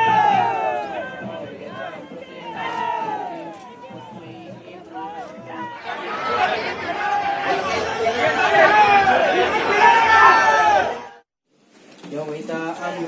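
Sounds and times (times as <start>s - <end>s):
crowd talking and shouting: 0.0s - 11.3s.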